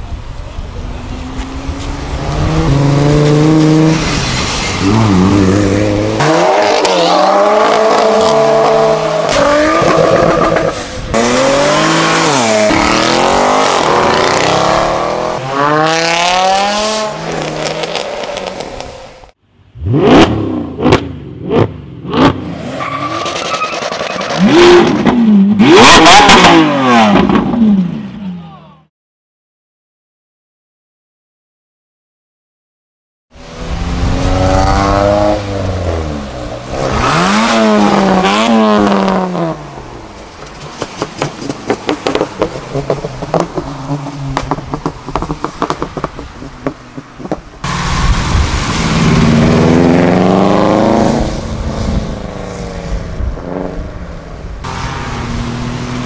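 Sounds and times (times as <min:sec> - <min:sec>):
car engines revving: 0:00.0 - 0:28.3, 0:33.4 - 0:56.0.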